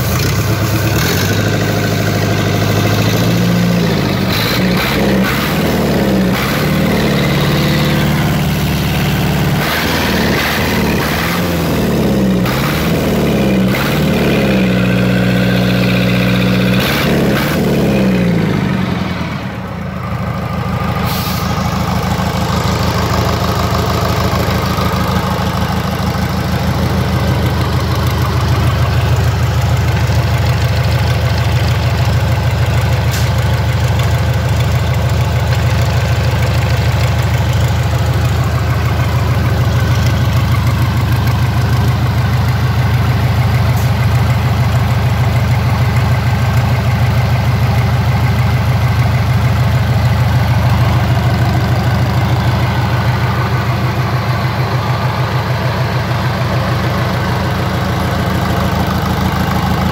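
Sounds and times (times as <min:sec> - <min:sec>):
diesel engine running steadily: 0:00.0 - 0:59.9.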